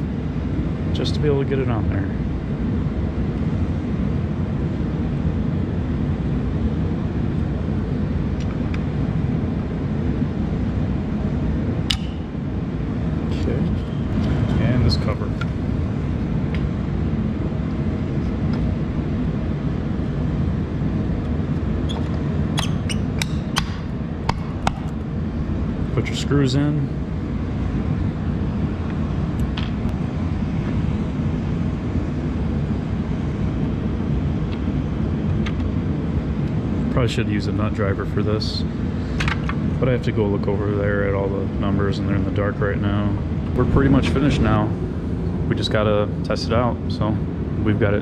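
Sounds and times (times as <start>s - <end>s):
low background rumble: 0.0s - 48.0s.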